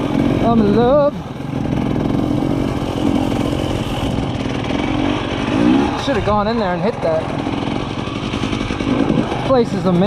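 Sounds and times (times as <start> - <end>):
dirt bike engine running: 0.0 - 10.0.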